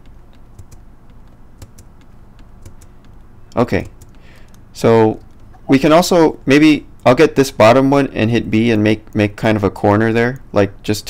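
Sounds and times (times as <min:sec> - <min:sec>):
keyboard and mouse clicks: 0:00.0 - 0:05.7.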